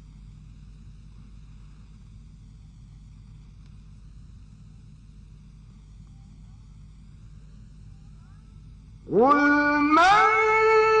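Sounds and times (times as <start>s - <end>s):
faint low hum: 0.0s - 11.0s
man chanting a recitation: 9.1s - 11.0s.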